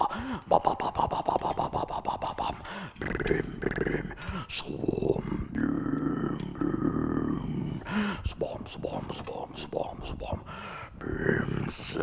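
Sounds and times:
man making wordless vocal sounds: 0.0s - 12.0s.

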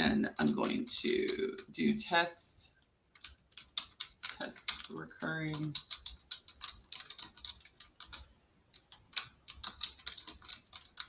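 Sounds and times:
keyboard typing clicks: 3.2s - 11.0s.

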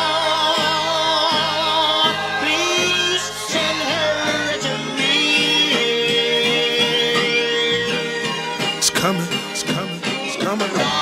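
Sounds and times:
song with held notes: 0.0s - 11.0s.

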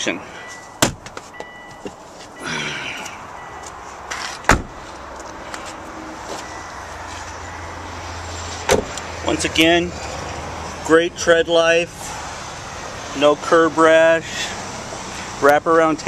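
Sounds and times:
car door slamming: 0.8s - 2.0s, 4.1s - 4.8s, 8.6s - 9.0s.

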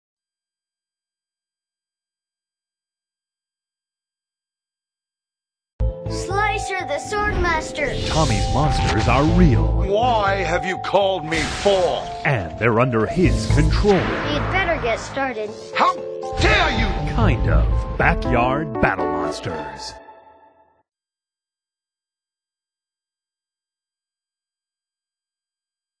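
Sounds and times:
music with loud low hit: 16.3s - 18.4s.

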